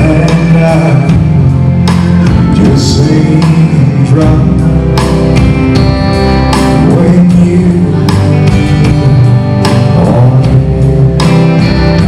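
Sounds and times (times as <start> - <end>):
drums: 0.0 - 12.0
electric guitar: 0.0 - 12.0.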